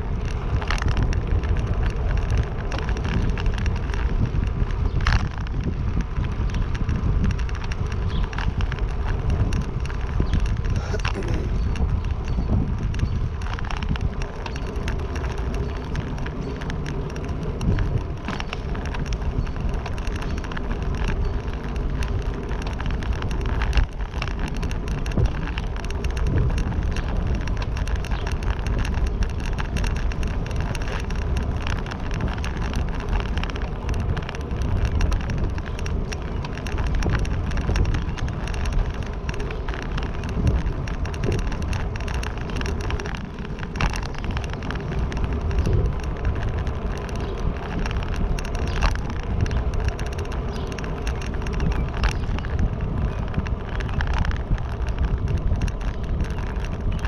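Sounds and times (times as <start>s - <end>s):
small rattles and clicks: 0.0s - 57.0s
vehicle ride rumbling: 0.0s - 57.0s.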